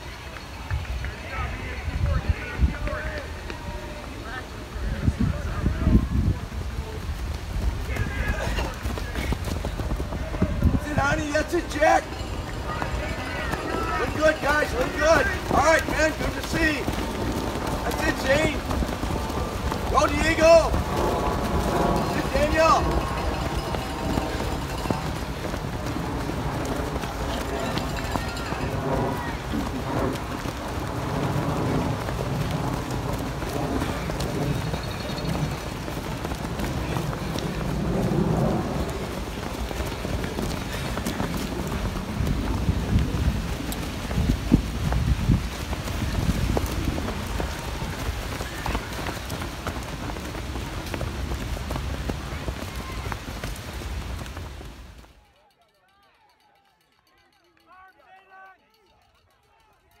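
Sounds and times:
runners' footsteps on leaves: 0.0 - 59.9
people shouting: 10.1 - 20.9.

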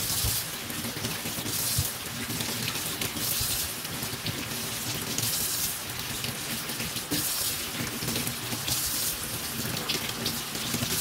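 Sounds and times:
tap water splashing into sink: 0.0 - 11.0.

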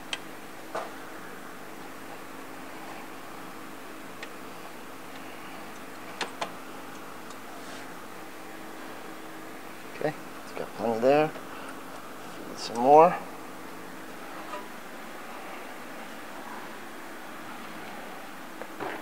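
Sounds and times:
steady background hum: 0.0 - 19.0.

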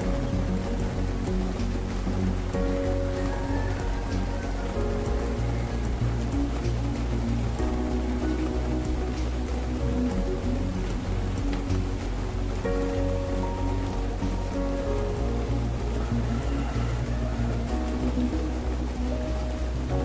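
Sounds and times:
calm instrumental music: 0.0 - 20.0
deep bass drone: 0.0 - 20.0
rain falling: 0.0 - 20.0.

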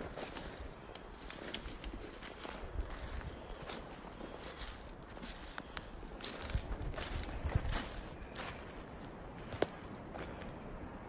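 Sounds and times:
footsteps through dry leaves: 0.0 - 10.6.

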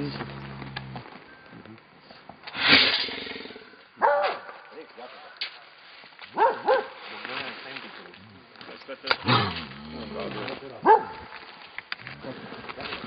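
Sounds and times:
bear growling and roaring: 0.0 - 1.1, 9.2 - 10.7, 12.0 - 13.0.

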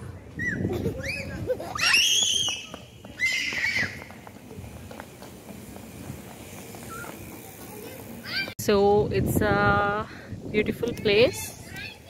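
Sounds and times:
child squealing: 0.4 - 4.0
running footsteps on paving: 1.7 - 8.6.

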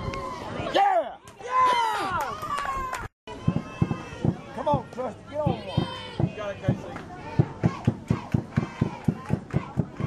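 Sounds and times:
people shouting and cheering: 0.0 - 10.0.

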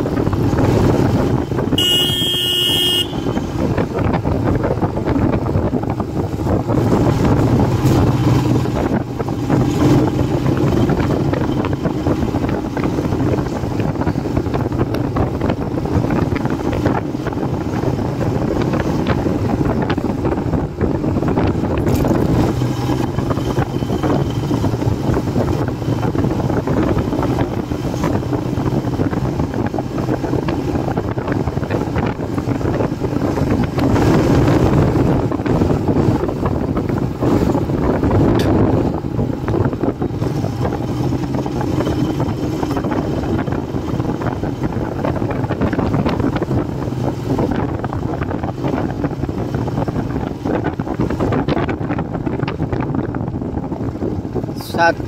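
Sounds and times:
motorcycle engine running: 0.0 - 55.0
wind buffeting microphone: 0.0 - 55.0.

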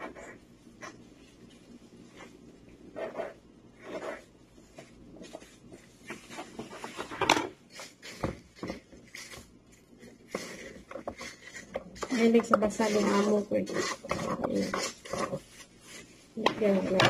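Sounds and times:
knife scraping a cutting board: 7.7 - 16.1.

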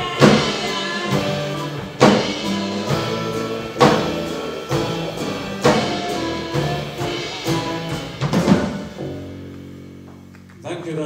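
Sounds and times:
loud drum hits: 0.0 - 9.5
live band playing: 0.0 - 10.6.

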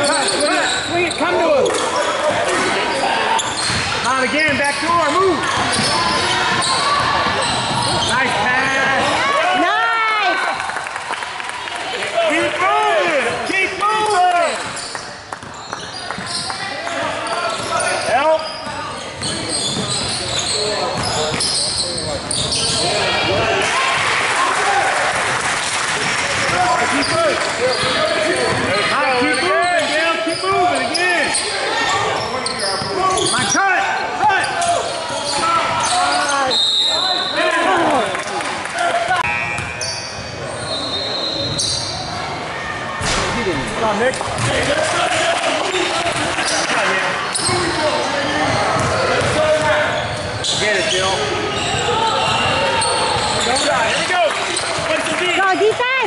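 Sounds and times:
sneakers squeaking: 0.0 - 9.6, 13.0 - 24.1, 26.4 - 37.8, 39.0 - 56.0
basketball bouncing: 3.6 - 4.6, 19.2 - 23.5, 43.0 - 44.7, 48.4 - 49.7.

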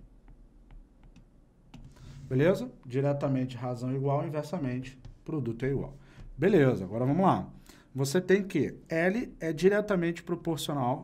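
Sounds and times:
stylus tapping on tablet: 0.0 - 2.0, 4.8 - 6.5.

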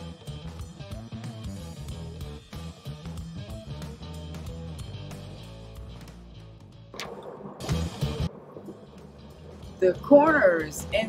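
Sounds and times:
background guitar music: 0.0 - 11.0.

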